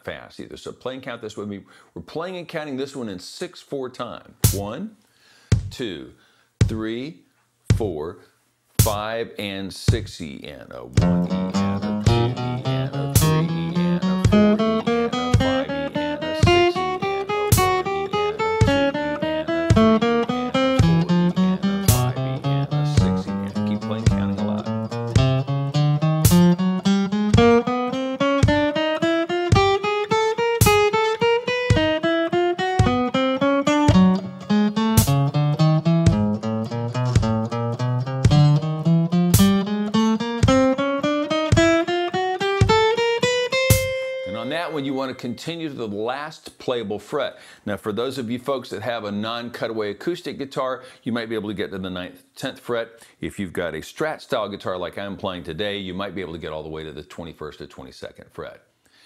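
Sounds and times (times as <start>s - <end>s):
metronome click: 11.0s - 19.0s, 19.6s - 27.8s, 28.4s - 32.0s, 32.7s - 40.8s, 41.4s - 44.4s
electric guitar picking notes: 11.0s - 45.4s.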